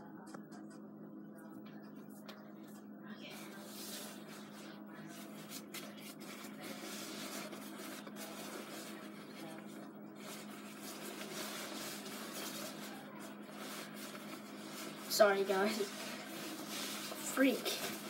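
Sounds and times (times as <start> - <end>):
steady low hum: 0.0 - 18.0
fabric rubbing on microphone: 2.0 - 18.0.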